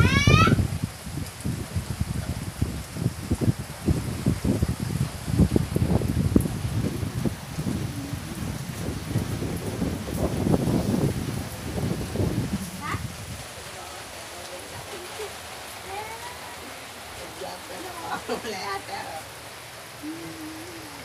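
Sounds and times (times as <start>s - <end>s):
wind buffeting microphone: 0.0s - 17.4s
rain falling on water and foliage: 0.0s - 21.0s.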